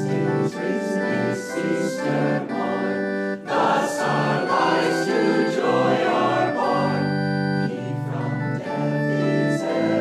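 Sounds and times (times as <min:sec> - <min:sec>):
choir singing a hymn: 0:00.0 - 0:10.0
sustained keyboard chords: 0:00.0 - 0:10.0.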